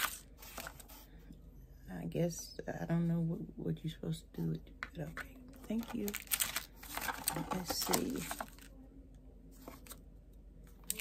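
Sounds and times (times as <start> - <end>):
faint rustling of packing: 5.5 - 8.8.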